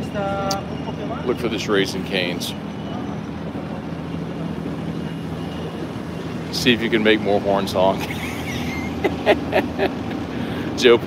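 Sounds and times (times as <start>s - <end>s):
city street traffic: 0.0s - 11.0s
man laughing: 8.0s - 10.2s.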